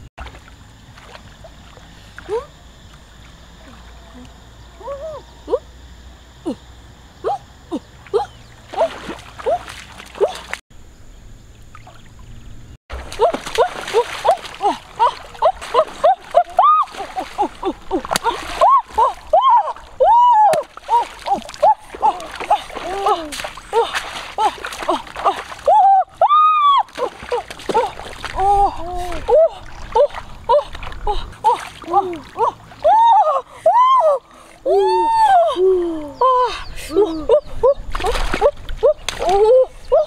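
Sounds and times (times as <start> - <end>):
splashing in shallow water: 0.0 - 4.4, 7.7 - 10.6, 11.7 - 40.0
person crying out excitedly: 13.2 - 37.8.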